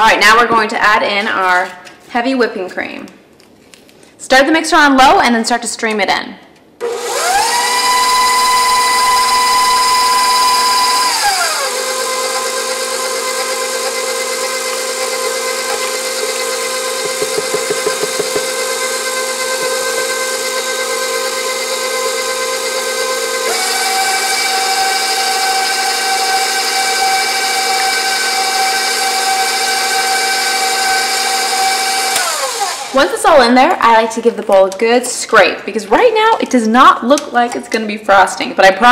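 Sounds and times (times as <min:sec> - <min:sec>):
stand mixer motor whining: 0:06.8 - 0:33.0.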